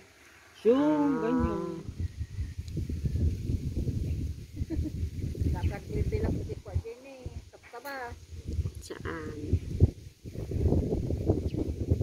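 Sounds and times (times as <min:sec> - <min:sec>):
wind buffeting microphone: 0:01.3 - 0:12.0.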